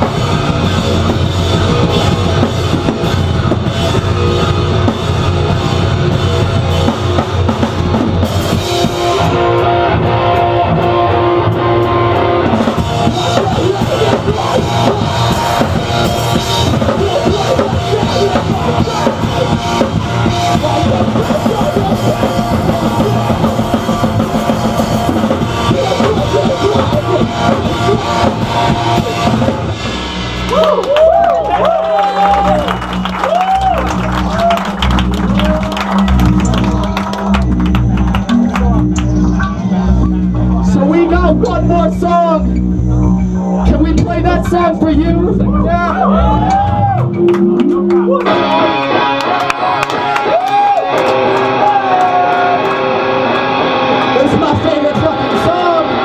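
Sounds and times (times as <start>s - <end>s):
bass drum: 0.0s - 48.1s
distorted electric guitars: 0.0s - 56.0s.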